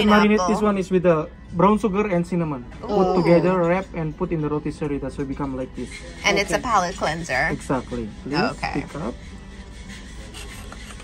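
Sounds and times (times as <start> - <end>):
knife sawing through pineapple: 7.5 - 11.0.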